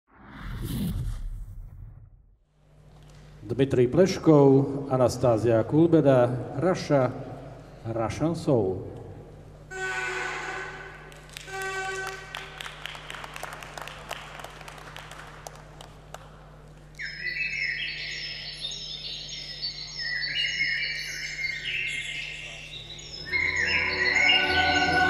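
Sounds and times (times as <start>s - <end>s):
audience applause: 11.1s - 16.5s
melodic music: 23.0s - 25.0s.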